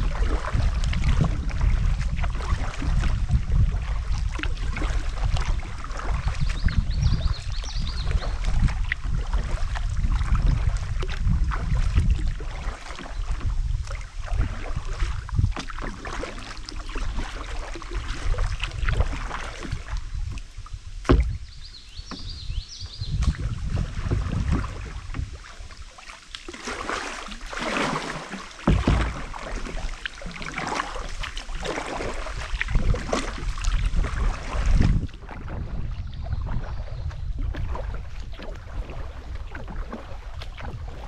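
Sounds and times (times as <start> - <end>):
paddle dipping and dripping: 0.0 - 41.0
water splashes: 0.0 - 41.0
low rumble: 18.4 - 25.7
clicks against hull: 18.4 - 26.8, 28.4 - 31.8.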